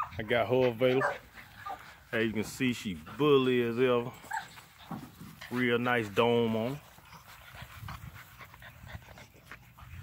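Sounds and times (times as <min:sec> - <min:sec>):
puppy panting faintly: 0:00.0 - 0:10.0.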